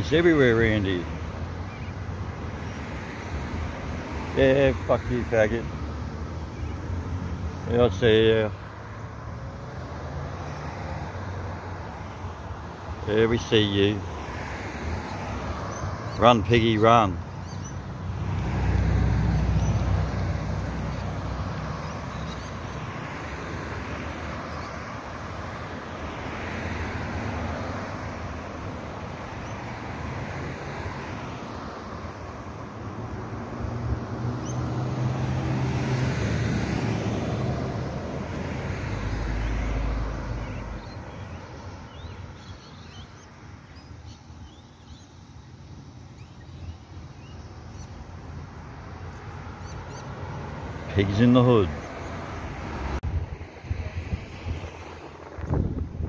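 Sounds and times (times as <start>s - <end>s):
cars passing on street: 0.0s - 56.0s.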